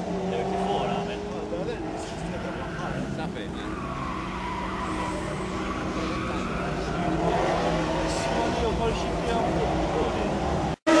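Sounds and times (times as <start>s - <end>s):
race car engine revving: 0.0s - 11.0s.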